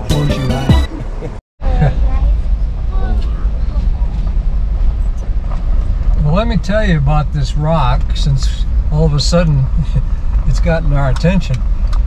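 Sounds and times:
engine and tyres rumbling on gravel: 0:00.8 - 0:12.0.

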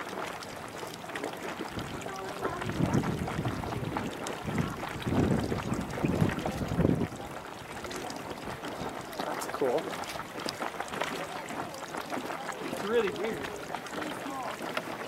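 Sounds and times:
geyser pool splashing: 0:00.0 - 0:15.0.

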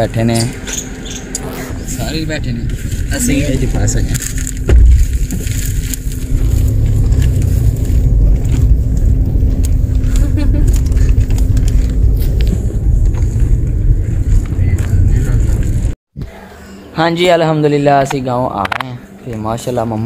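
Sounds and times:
road and engine rumble: 0:00.0 - 0:16.0
low hum: 0:00.0 - 0:19.2.

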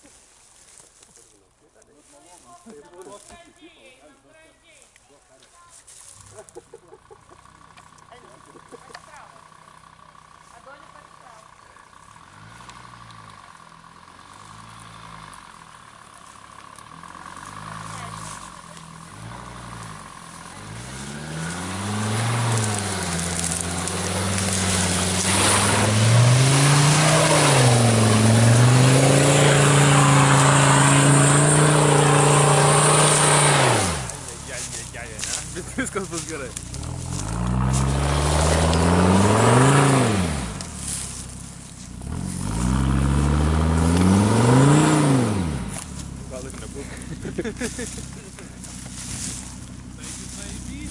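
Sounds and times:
car engine revving: 0:06.2 - 0:50.9.

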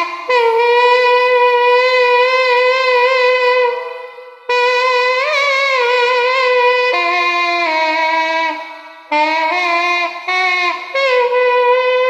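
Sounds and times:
double-reed wind instrument note: 0:00.0 - 0:12.0.

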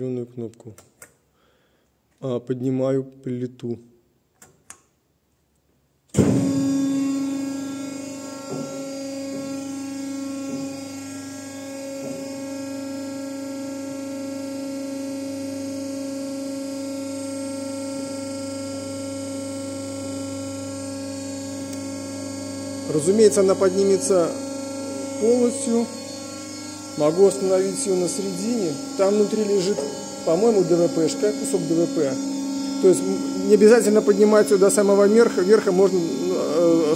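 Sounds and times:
hydraulic press motor humming: 0:06.1 - 0:36.9.

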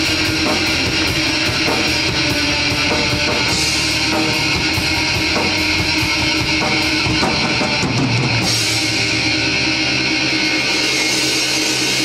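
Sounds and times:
metal band sustained chord: 0:00.0 - 0:12.0.

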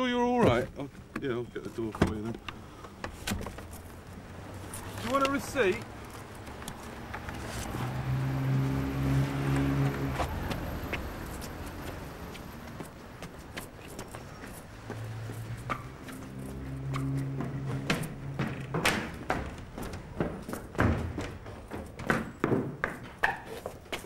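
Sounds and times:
footsteps: 0:01.6 - 0:24.0.

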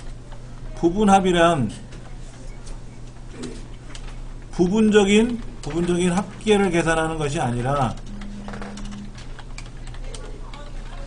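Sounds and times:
steady low hum: 0:00.0 - 0:11.0
keyboard keystrokes: 0:07.7 - 0:10.7.

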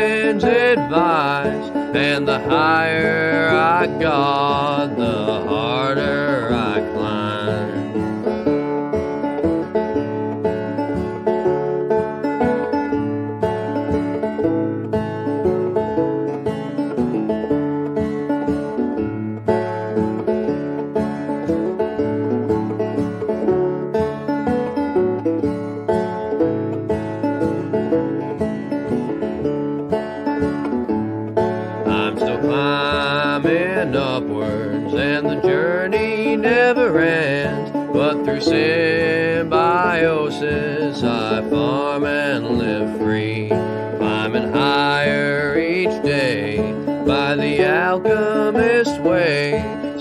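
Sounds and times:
plucked string instruments: 0:00.0 - 0:50.0.

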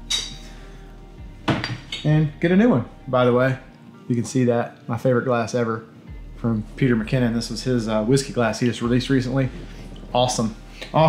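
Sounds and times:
ringing glass clink: 0:00.0 - 0:00.4
dull glass knock: 0:01.4 - 0:01.9.

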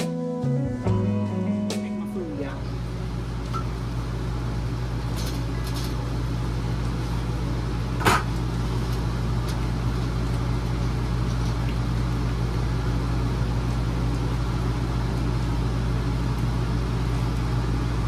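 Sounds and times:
appliance humming: 0:00.0 - 0:18.0.

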